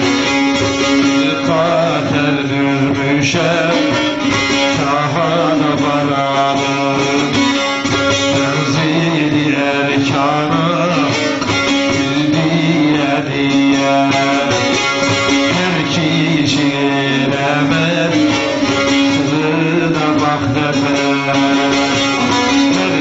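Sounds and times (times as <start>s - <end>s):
droning lute strings: 0.0s - 23.0s
person singing: 0.0s - 23.0s.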